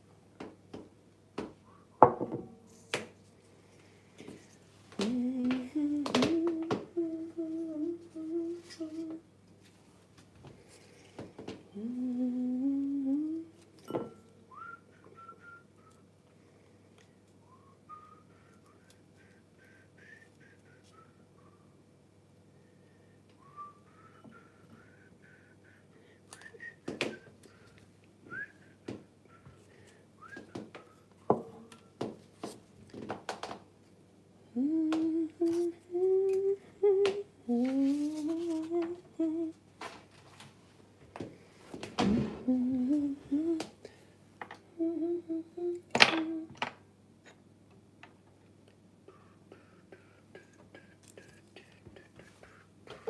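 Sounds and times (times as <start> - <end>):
person humming: 4.9 - 9.3, 11.7 - 16.0, 17.5 - 21.2, 34.4 - 39.6, 42.0 - 44.0, 44.6 - 47.4, 49.1 - 53.0
soft whistling: 14.1 - 16.1, 17.4 - 21.8, 23.4 - 27.7, 28.3 - 32.0.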